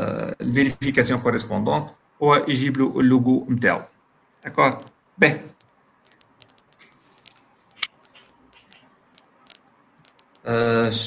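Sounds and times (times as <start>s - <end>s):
mouse and keyboard clicks: 4.3s - 5.0s, 5.6s - 10.5s.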